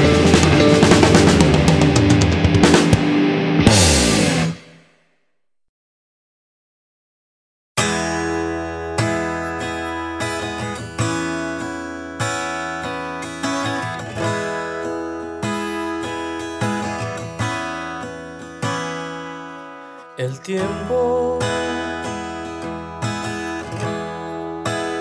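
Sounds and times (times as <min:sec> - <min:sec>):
acoustic guitar strumming chords: 0:00.0 - 0:04.7, 0:07.8 - 0:25.0.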